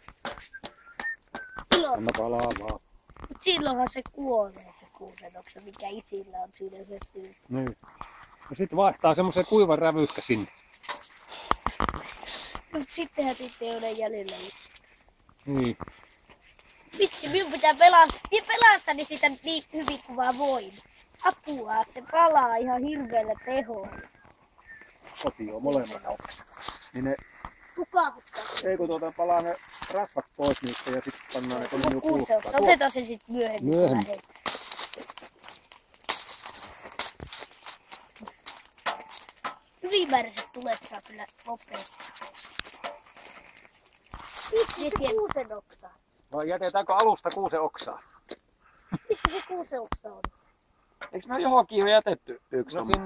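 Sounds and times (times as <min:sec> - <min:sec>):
sharp knocks and cracks: 0:00.0 - 0:06.2, 0:10.8 - 0:13.5, 0:15.2 - 0:21.4, 0:29.8 - 0:45.5
person speaking: 0:12.6 - 0:14.6, 0:17.0 - 0:24.0, 0:27.8 - 0:34.2, 0:39.8 - 0:42.1, 0:44.5 - 0:47.9, 0:49.0 - 0:50.2.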